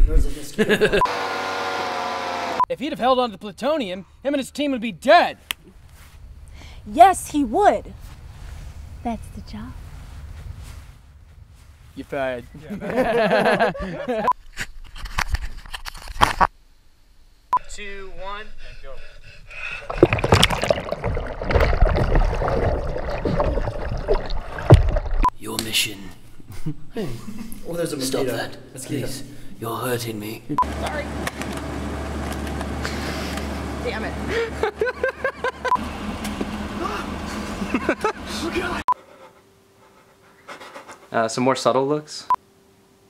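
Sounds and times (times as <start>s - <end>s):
person breathing hard: 6.5s - 6.9s, 18.4s - 20.0s
pool water splashing: 19.8s - 25.3s.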